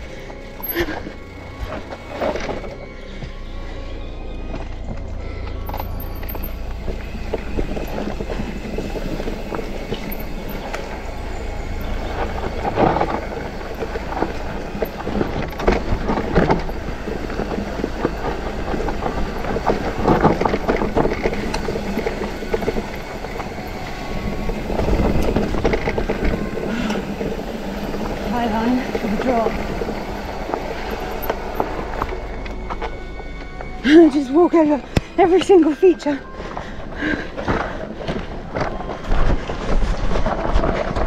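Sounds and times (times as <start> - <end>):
bike frame and chain rattling: 0.0 - 2.8, 5.4 - 32.9
wheels knocking on roots: 0.0 - 3.4, 4.4 - 41.0
steady low rumble: 0.0 - 41.0
tyres running over dirt: 0.0 - 41.0.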